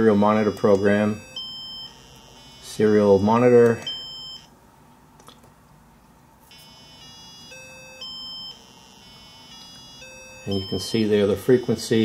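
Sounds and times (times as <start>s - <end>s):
buzzy square-wave beeps: 0.0s - 4.5s, 6.5s - 12.0s.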